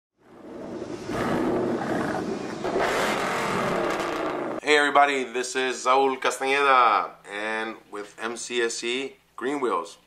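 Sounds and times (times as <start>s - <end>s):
car engine revving: 0.4s - 4.6s.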